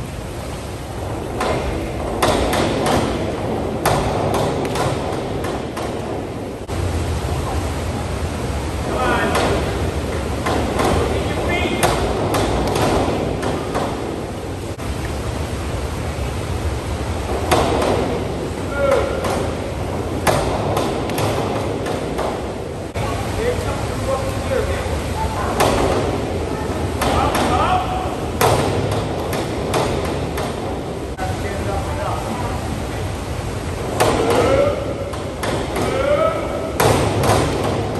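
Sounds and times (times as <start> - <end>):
diving board rebounding and rattling: 0.0 - 31.2, 33.3 - 37.9
hiss of water and ventilation: 0.0 - 37.9
sharp knocks and slaps: 1.3 - 6.3, 9.2 - 14.2, 17.3 - 22.6, 25.6 - 26.2, 27.0 - 30.8, 34.0 - 37.9.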